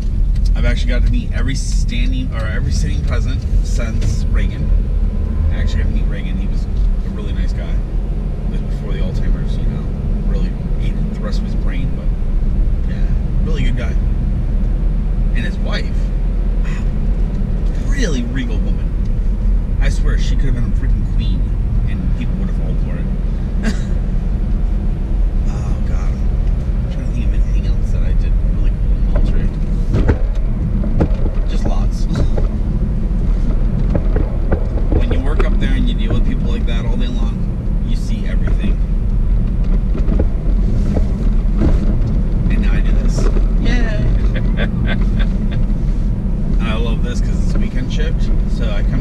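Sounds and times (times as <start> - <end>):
car road and engine rumble: 0.0 - 49.0
indistinct talking: 25.5 - 26.2, 42.5 - 45.7.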